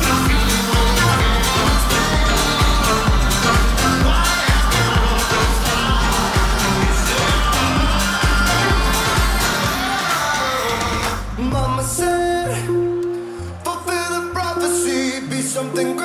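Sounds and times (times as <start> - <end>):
kick drum: 0.0 - 9.8
electronic dance music: 0.0 - 16.0
layered synths: 0.0 - 16.0.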